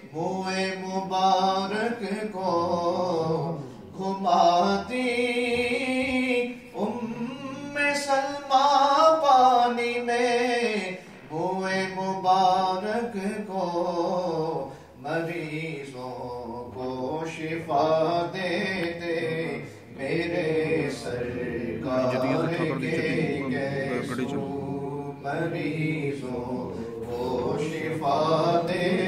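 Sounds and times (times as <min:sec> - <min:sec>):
man singing unaccompanied: 0:00.0 - 0:29.0.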